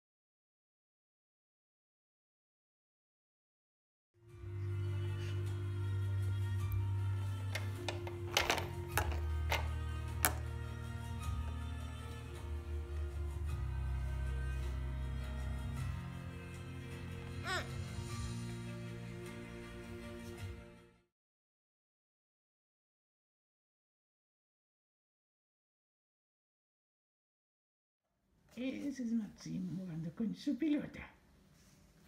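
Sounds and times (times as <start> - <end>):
soft background music: 4.2 - 21.1
plastic toys clacking: 7.6 - 10.5.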